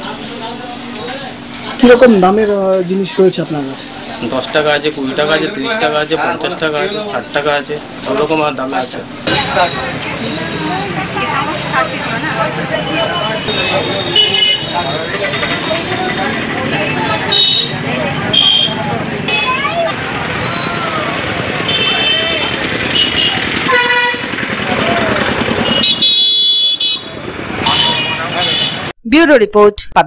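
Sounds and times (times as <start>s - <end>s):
many people talking: 0.0s - 26.0s
short vehicle horn toots: 13.4s - 14.9s, 21.6s - 24.2s, 25.6s - 28.9s.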